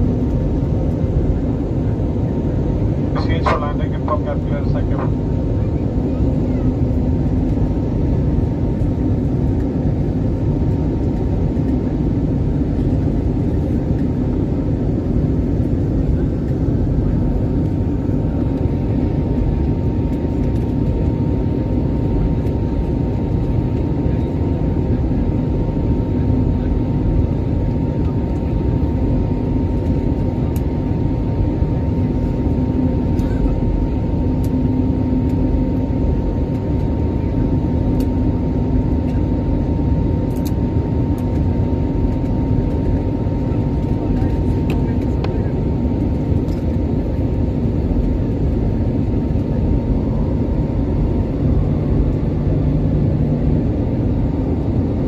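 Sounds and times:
airliner cabin noise: 0.0 - 55.0.

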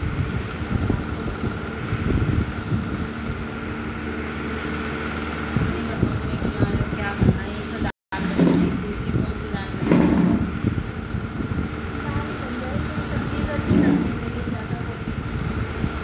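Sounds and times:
steady background noise: 0.0 - 16.0
indistinct voices talking: 5.6 - 11.2, 11.8 - 15.2.

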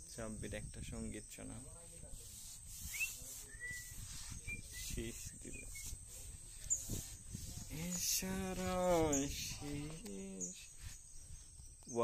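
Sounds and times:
high insect trill: 0.0 - 12.0
whistled bird calls: 2.8 - 7.0.

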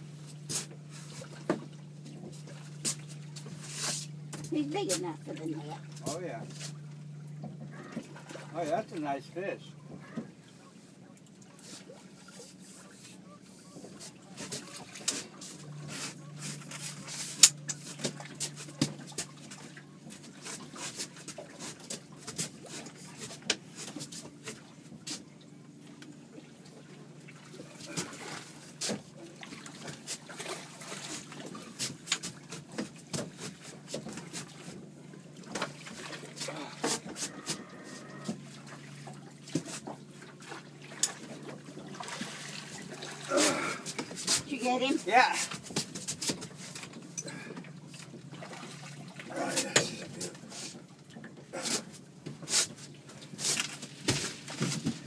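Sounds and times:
water splashing: 0.0 - 10.4, 13.9 - 55.0
low steady hum: 0.0 - 55.0.

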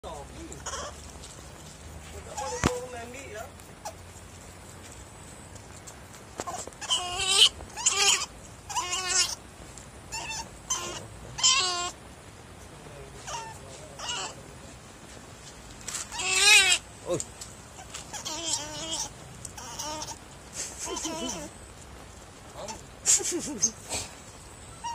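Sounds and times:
otter pup squealing: 0.4 - 1.1, 2.2 - 3.0, 3.8 - 4.0, 6.4 - 9.4, 10.1 - 12.0, 13.2 - 14.4, 16.0 - 16.9, 17.7 - 21.6, 22.6 - 22.9, 24.7 - 24.9.

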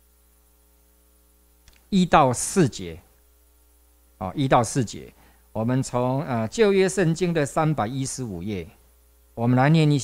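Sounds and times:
faint mains hum: 0.0 - 10.0
man speaking: 1.9 - 3.1, 4.2 - 8.8, 9.4 - 10.0.

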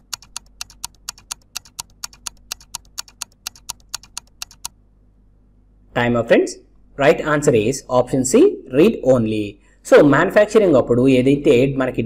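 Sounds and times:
rapid timer ticks: 0.0 - 4.8.

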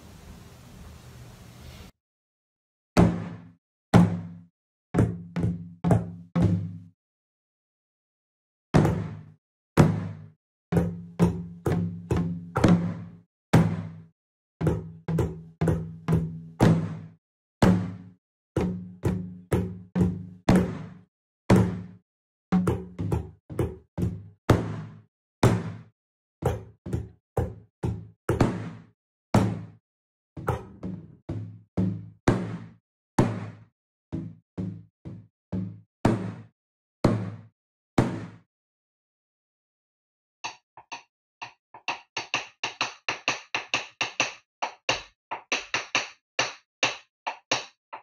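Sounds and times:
drumsticks knocking practice surface: 40.5 - 48.0.

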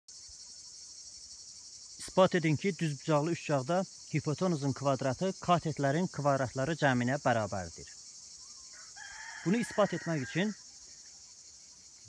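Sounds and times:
insects chirring: 0.1 - 12.0.

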